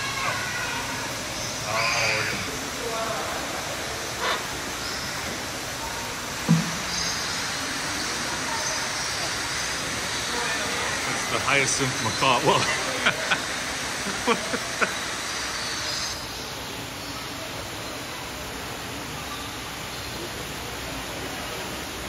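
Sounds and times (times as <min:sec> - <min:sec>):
faint indistinct voices: 0:00.0 - 0:22.0
steady background hiss: 0:00.0 - 0:22.0
sharp knock: 0:06.5 - 0:06.8.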